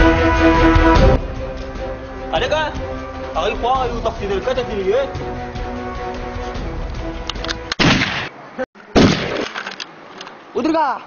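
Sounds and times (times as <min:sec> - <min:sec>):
background music: 0:00.0 - 0:07.8.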